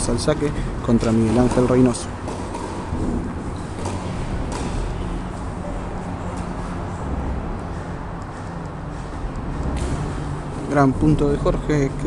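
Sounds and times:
steady low hum: 0.0 - 12.0
tennis ball struck and bouncing: 1.0 - 6.7.

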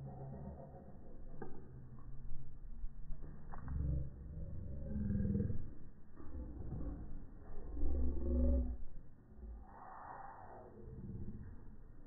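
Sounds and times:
deep drawn-out slowed sound: 0.0 - 12.0
low rumble: 0.0 - 12.0.

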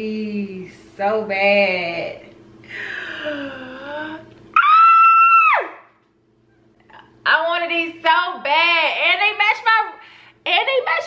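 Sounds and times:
faint steady hum: 0.0 - 11.0
woman squealing: 3.5 - 5.9.

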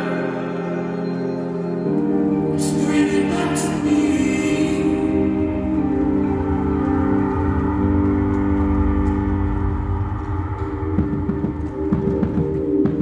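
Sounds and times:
gong-like drone: 2.8 - 13.0.

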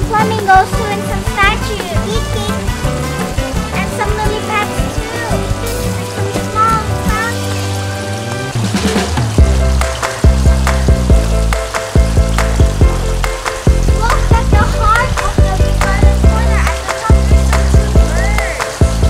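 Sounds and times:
upbeat guitar music: 0.0 - 19.0
steady beat: 8.6 - 19.0.

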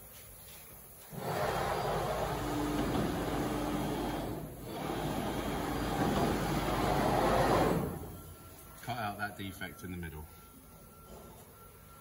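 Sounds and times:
saw running: 1.1 - 8.3.

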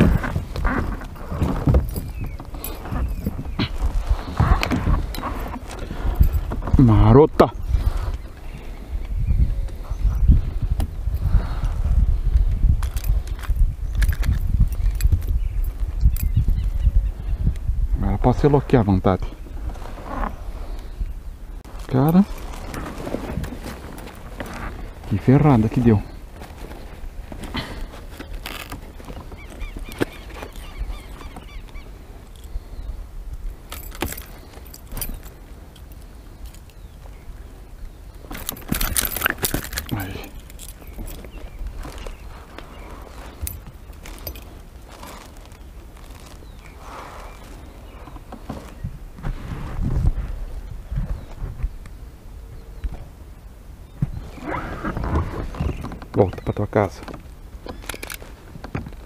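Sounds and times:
metallic clicks and rattles: 12.8 - 15.4, 38.3 - 42.1.

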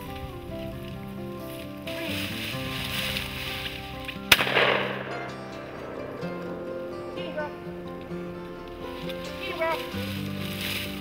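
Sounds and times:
background music: 0.0 - 11.0
shotgun shot: 4.3 - 7.6.

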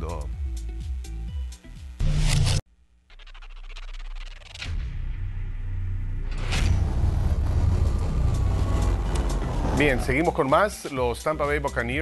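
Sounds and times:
deep steady rumbling: 5.4 - 10.3.

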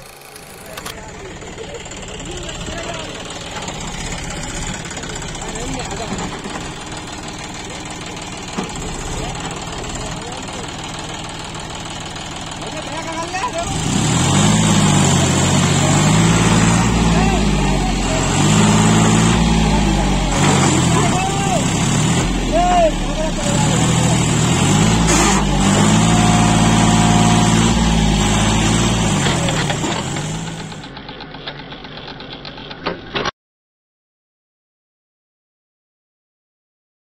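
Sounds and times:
tractor diesel engine under load: 0.0 - 33.3.

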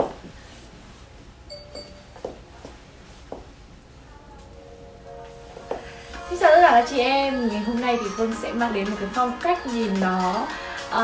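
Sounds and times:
electronic chime notes: 1.5 - 2.2.

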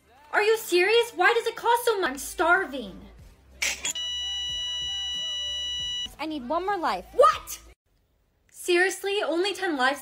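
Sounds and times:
electronic beep tone: 3.9 - 6.1.

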